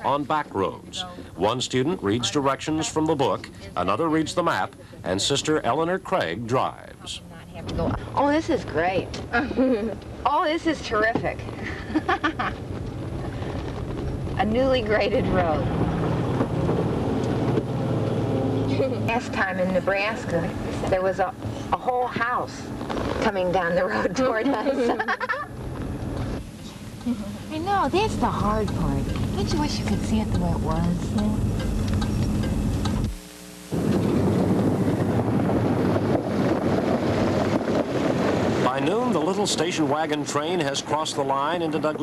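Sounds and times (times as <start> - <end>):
faint hum: 0.0 - 37.6
low road rumble: 0.0 - 42.0
car engine droning: 3.6 - 42.0
wind buffeting microphone: 10.0 - 23.7, 25.5 - 42.0.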